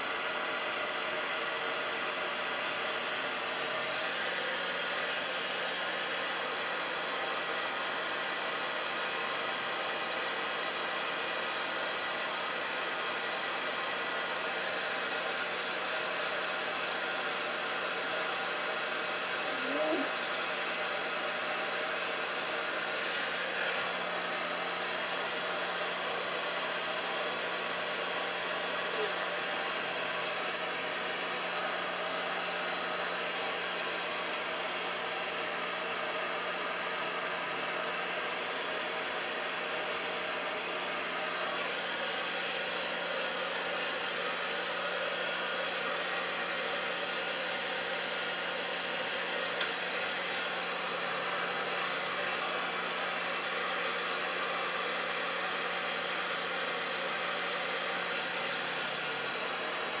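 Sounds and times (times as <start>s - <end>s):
hair dryer running: 0.0s - 60.0s.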